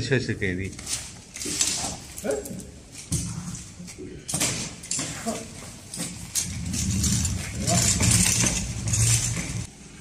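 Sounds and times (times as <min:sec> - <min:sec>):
trolley handle and fittings clattering: 0:04.3 - 0:09.7.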